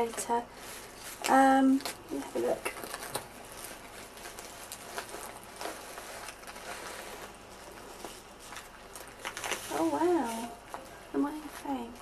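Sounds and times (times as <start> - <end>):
paper envelope rustling and crinkling: 0.0 - 12.0
small crackles: 0.0 - 12.0.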